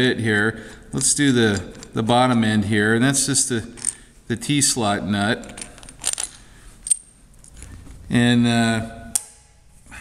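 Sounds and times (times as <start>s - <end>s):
small steel parts clinking: 3.8s - 4.1s, 5.4s - 7.8s.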